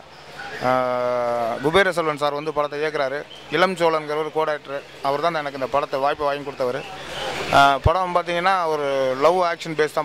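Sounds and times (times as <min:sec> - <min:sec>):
man talking quickly: 0:00.4 - 0:10.0.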